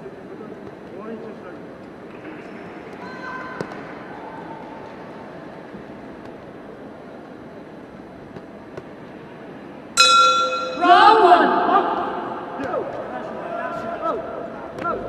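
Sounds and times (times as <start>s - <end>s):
arena crowd murmur: 0.0s - 7.9s, 10.8s - 15.0s
boxing ring bell: 10.0s - 10.9s
people shouting: 10.7s - 15.0s.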